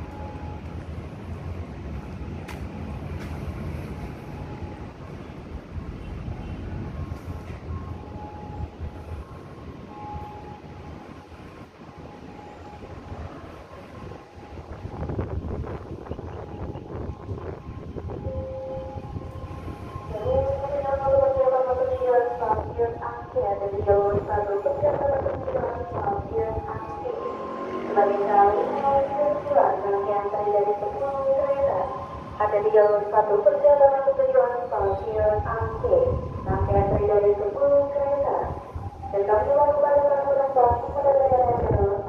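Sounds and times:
train rumbling: 0.0 - 42.0.

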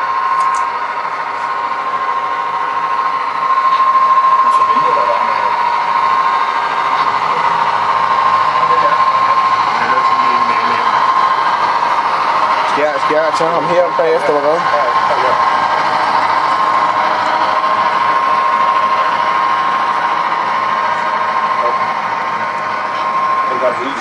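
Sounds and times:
high whine: 0.0 - 24.0
model train motors and wheels whirring: 0.0 - 24.0.

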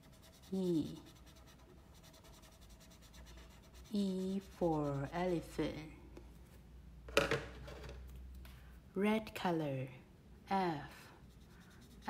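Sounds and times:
marker scribbling on paper: 0.0 - 5.8, 11.2 - 12.0.

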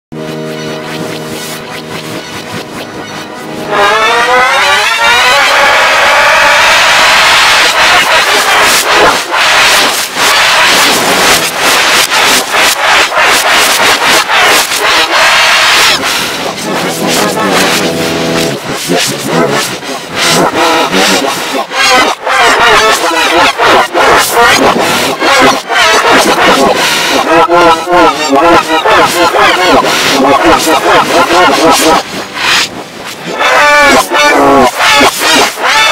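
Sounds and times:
steady tone: 0.1 - 21.8, 26.3 - 35.6
distorted reversed cartoon music: 0.1 - 35.9.

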